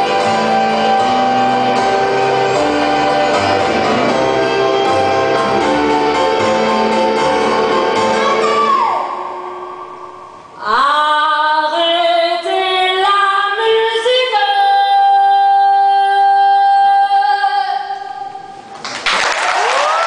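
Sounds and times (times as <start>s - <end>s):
woman singing: 10.6s - 18.4s
audience applause: 18.8s - 20.0s.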